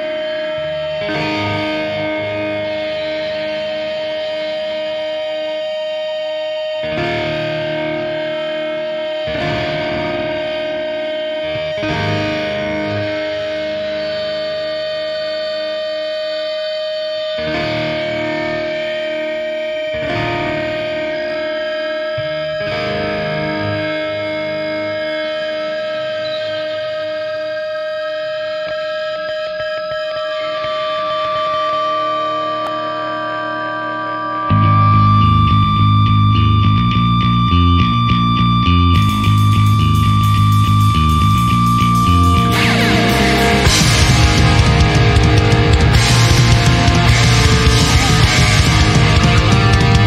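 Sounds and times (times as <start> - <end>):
distorted electric guitar chords: 0.0 - 50.0
rock band playing: 0.0 - 50.0
cymbal crash: 41.6 - 50.0.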